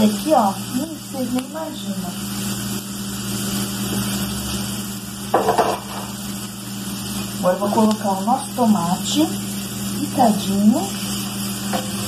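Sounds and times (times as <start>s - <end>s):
onion and garlic sizzling in oil: 0.0s - 12.0s.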